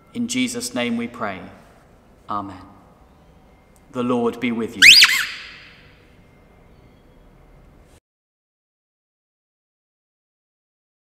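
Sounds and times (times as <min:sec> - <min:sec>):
high rising squeak: 0:04.8 - 0:05.9.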